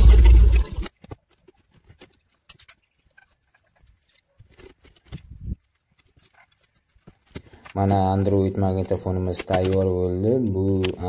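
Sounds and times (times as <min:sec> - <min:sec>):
plastic connectors clicking: 0:08.7 - 0:11.0.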